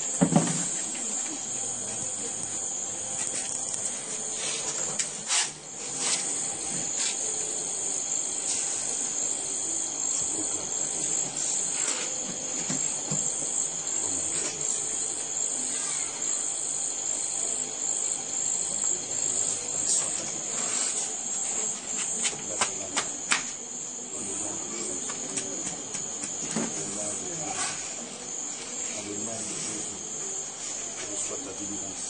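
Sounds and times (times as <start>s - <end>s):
insect chorus chirring: 0.0s - 32.0s.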